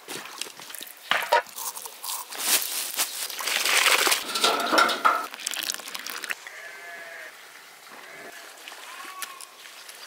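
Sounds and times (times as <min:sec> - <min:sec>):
quiet outdoor ambience: 0:00.0 - 0:10.0
farm animal bleating: 0:06.4 - 0:09.6.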